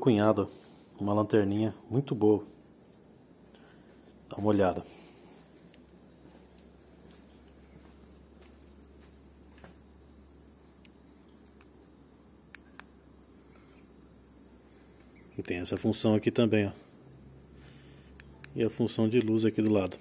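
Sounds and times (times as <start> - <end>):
crickets chirring: 0.0 - 20.0
flashlight switch clicks: 12.5 - 12.9.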